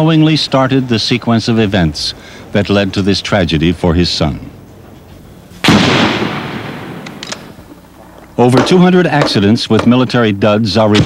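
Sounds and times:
loud blast: 5.6 - 7.6.

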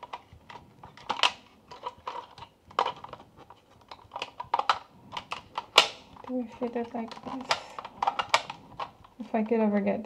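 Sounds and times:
hard plastic parts clicking: 0.0 - 9.1.

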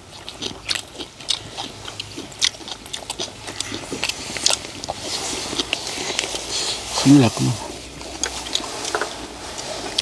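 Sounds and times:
people chewing: 0.0 - 10.0.

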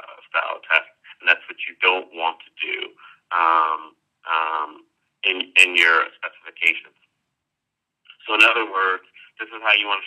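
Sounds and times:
man talking: 0.0 - 6.9, 8.1 - 10.0.

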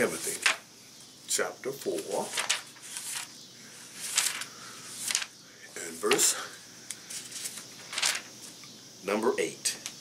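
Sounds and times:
thin paper pages turning: 2.1 - 3.3, 3.9 - 5.3, 7.1 - 8.3.

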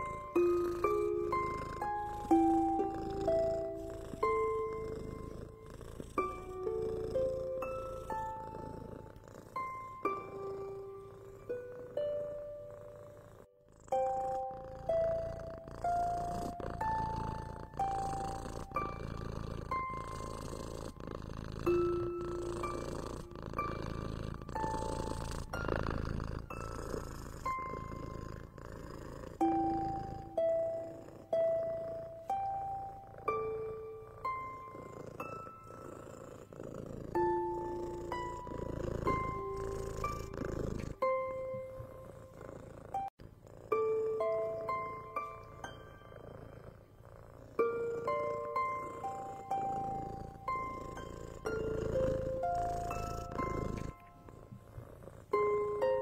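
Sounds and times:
plucked melody: 0.0 - 46.8, 47.6 - 56.0
cat purring: 0.0 - 56.0.

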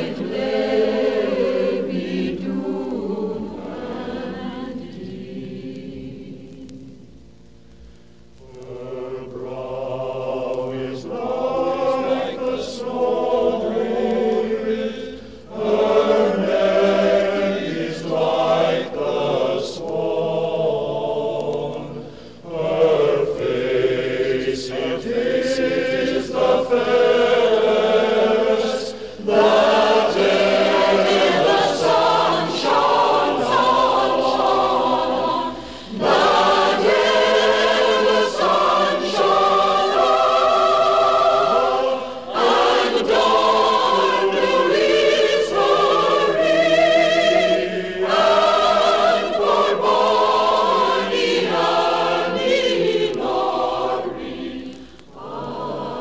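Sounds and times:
choir singing: 0.0 - 7.0, 8.4 - 56.0.

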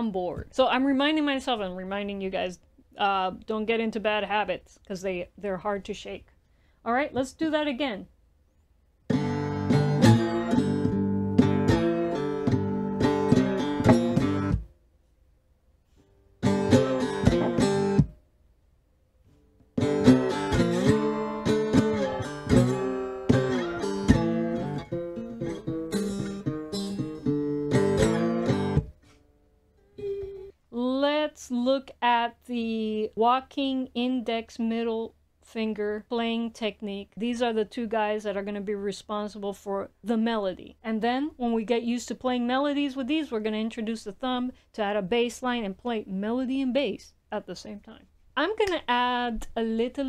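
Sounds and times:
woman speaking: 0.0 - 8.1, 30.0 - 50.0
slide guitar blues: 9.1 - 14.6, 16.4 - 18.1, 19.8 - 29.0, 29.8 - 30.6.

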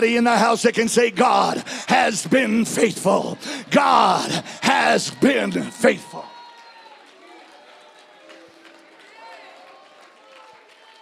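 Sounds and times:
congregation voices responding: 0.0 - 6.5.

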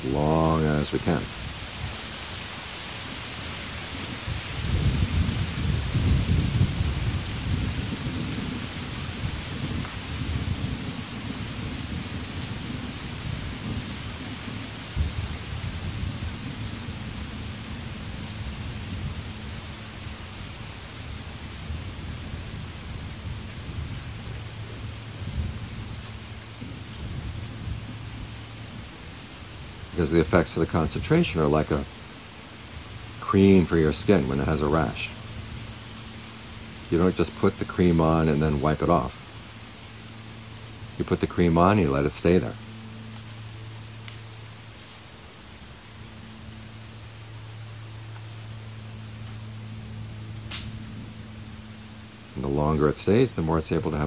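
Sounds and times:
faint high hiss: 0.0 - 54.0
steady low hum: 0.0 - 54.0
low rumble: 3.0 - 54.0.

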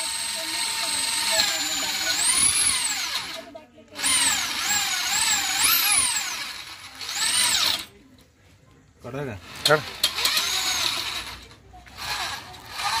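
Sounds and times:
electric drill whining: 0.0 - 7.9, 9.6 - 13.0.

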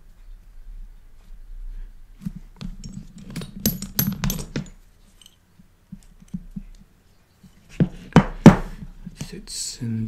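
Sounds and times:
man talking: 9.2 - 10.0.

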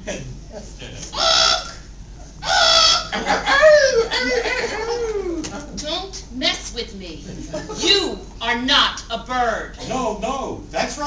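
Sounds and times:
woman imitating bird squawks: 1.2 - 1.8, 2.4 - 3.1
people laughing: 3.0 - 5.5, 7.3 - 8.0.

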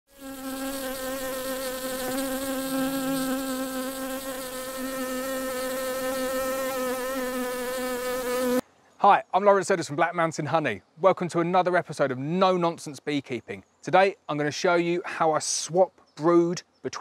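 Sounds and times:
bees buzzing: 0.1 - 8.6.

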